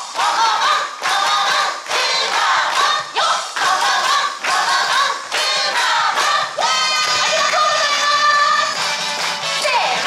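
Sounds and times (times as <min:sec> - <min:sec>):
dance song with chanting voices: 0:00.0 - 0:10.0.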